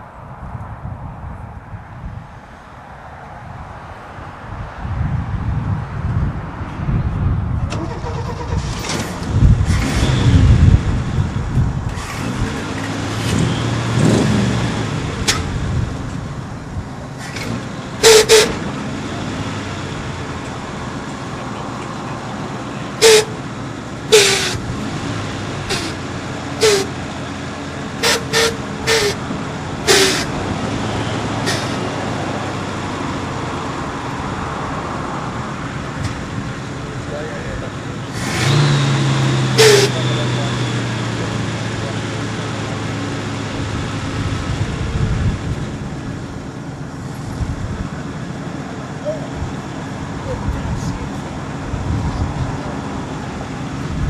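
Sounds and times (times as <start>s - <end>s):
engine revving: 7.7s - 35.3s, 36.0s - 46.2s
pickup truck engine idling: 7.7s - 54.0s
air suspension hisses: 29.9s - 30.3s, 31.4s - 31.9s.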